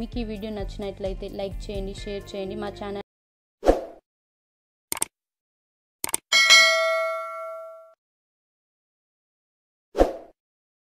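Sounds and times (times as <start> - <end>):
mouse clicks: 4.9 - 5.1
bright bell ding: 6.3 - 8.0.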